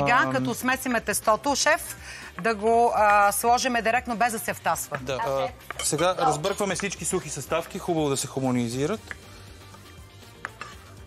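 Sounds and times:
faint background music: 0:00.0 - 0:11.0
utensils knocking on cookware: 0:05.6 - 0:07.2.

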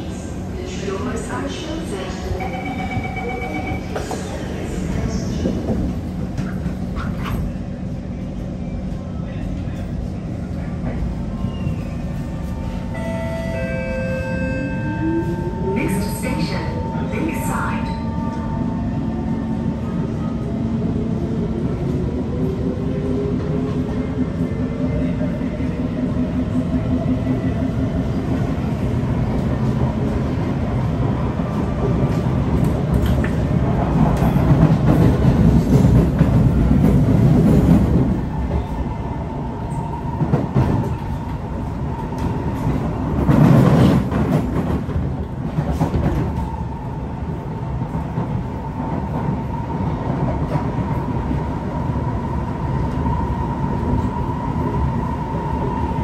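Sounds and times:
wheels rumbling on rail: 0:00.0 - 0:56.0.

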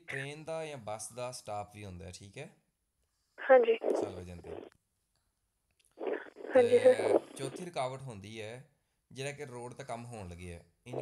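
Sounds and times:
man's voice: 0:00.0 - 0:02.4, 0:04.0 - 0:04.5, 0:06.6 - 0:08.6, 0:09.2 - 0:11.0.

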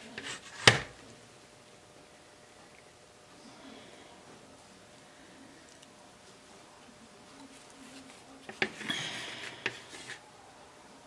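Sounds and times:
craft stick scraping canvas: 0:07.9 - 0:10.2.

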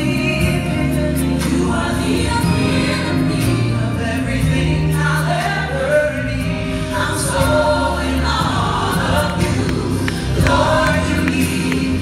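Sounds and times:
sustained instrumental accompaniment: 0:00.0 - 0:12.0.

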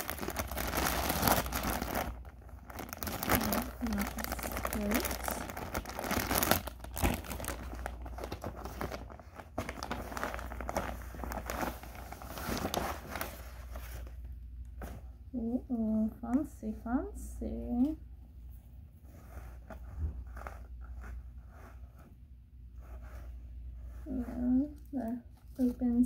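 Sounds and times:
plastic bags crinkling: 0:00.0 - 0:15.0.

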